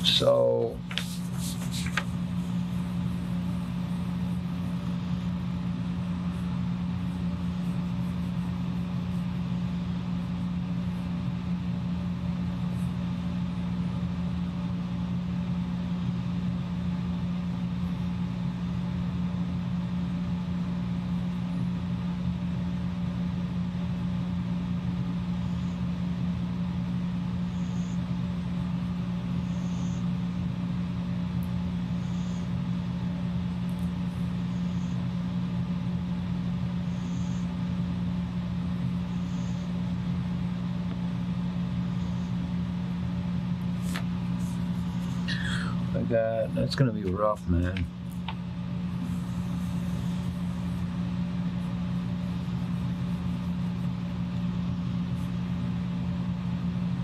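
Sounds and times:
low machine hum: 0.0 - 57.0.

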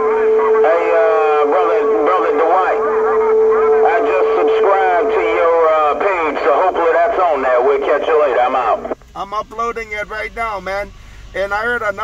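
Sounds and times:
steady whistle tone: 0.0 - 5.6
voices over radio speaker: 0.0 - 12.0.

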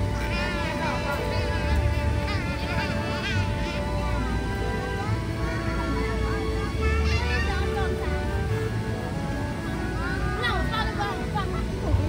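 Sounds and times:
children calling and squealing: 0.0 - 12.0
faint held musical tones: 0.0 - 12.0
low steady hum: 0.0 - 12.0.

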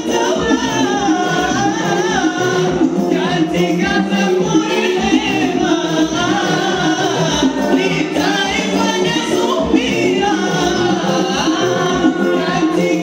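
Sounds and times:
amplified music: 0.0 - 13.0
men singing into microphones: 0.0 - 13.0.

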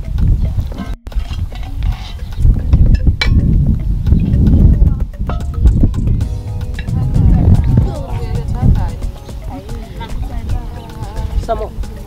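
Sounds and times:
wind rumbling on microphone: 0.0 - 12.0
faint voices of people: 6.8 - 12.0.

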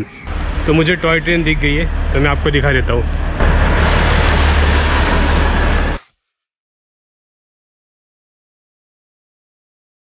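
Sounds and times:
diesel locomotive engine rumble: 0.0 - 6.0.

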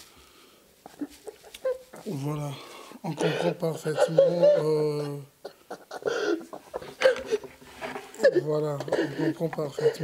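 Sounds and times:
man sobbing: 1.0 - 7.5, 8.2 - 10.0.

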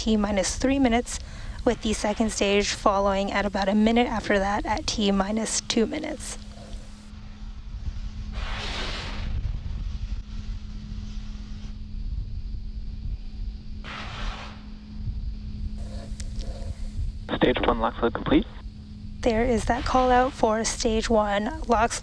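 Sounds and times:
constant hum: 0.0 - 22.0
steady low rumble: 0.0 - 22.0
short bursts of hissing: 13.9 - 14.7.

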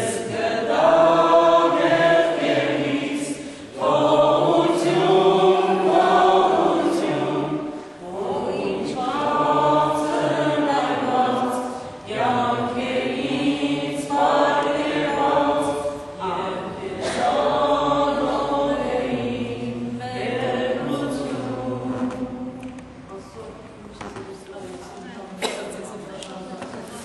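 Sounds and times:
congregation singing a hymn: 0.0 - 23.3.

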